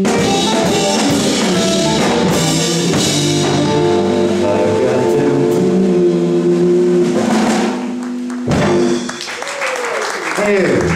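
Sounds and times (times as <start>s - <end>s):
live blues band playing: 0.0s - 9.6s.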